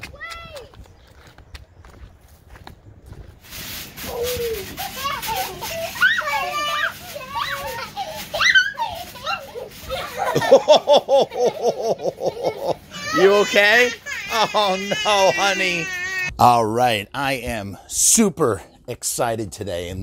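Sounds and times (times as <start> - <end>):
children shouting and squealing: 0.0 - 0.8, 4.0 - 16.3.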